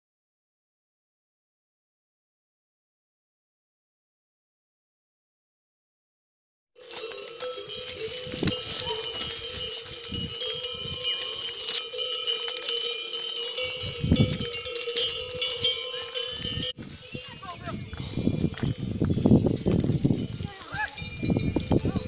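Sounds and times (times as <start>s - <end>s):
animal bells ringing: 6.8s - 22.0s.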